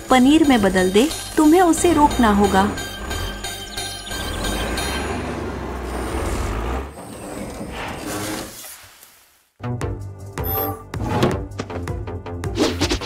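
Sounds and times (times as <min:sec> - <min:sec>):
background music: 0:00.0 - 0:06.9, 0:09.6 - 0:13.0
cartoon digging vehicle engine: 0:00.1 - 0:08.7.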